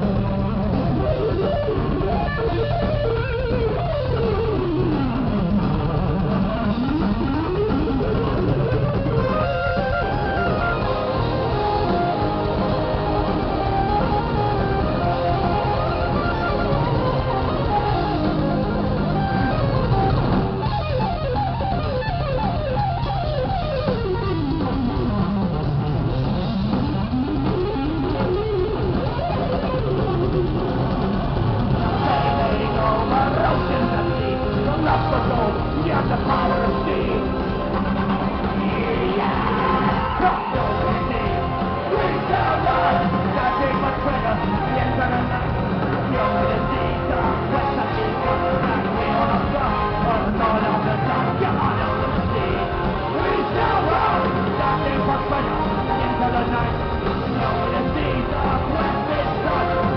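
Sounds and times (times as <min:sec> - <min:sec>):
distorted electric guitar: 0:00.0 - 0:59.9
drums: 0:00.0 - 0:59.9
heavy metal band playing: 0:00.0 - 0:59.9.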